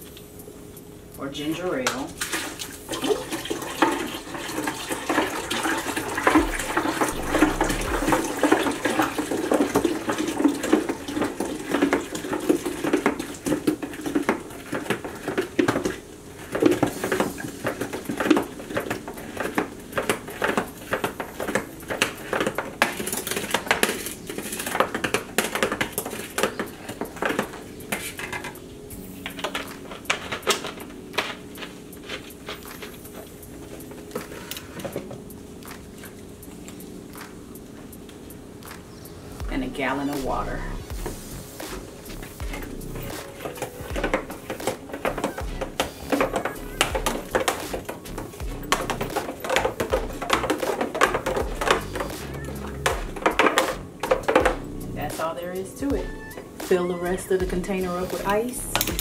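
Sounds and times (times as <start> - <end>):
liquid glugging and splashing: 2.2 - 28.6, 40.4 - 55.2.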